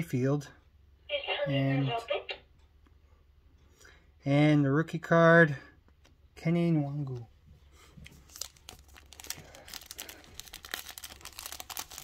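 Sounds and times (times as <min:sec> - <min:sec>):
foil wrapper crinkling: 0:08.2 - 0:12.0.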